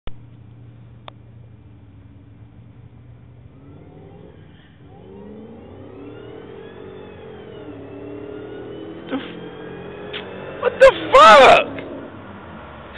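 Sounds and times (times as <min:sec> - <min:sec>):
engines accelerating hard: 0:00.2 - 0:12.9.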